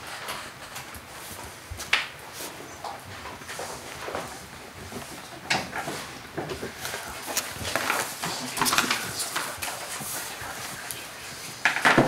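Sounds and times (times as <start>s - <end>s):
paper rustling: 2.3s - 11.6s.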